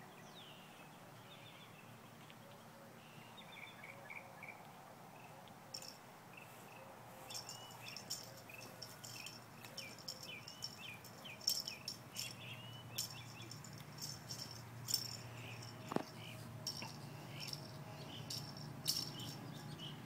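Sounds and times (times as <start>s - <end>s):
bird chirps: 3.0s - 20.0s
rattling insect clicks: 5.8s - 6.0s, 7.3s - 19.7s.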